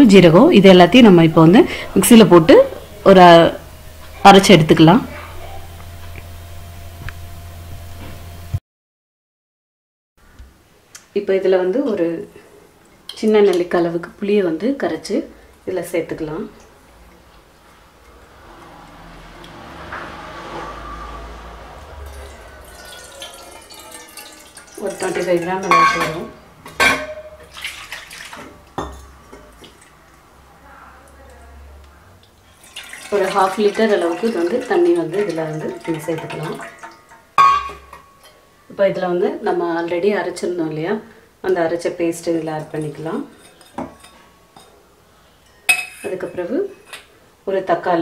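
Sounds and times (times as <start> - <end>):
water pouring into metal pot: 22.0 - 26.4, 27.3 - 30.0, 32.4 - 38.0.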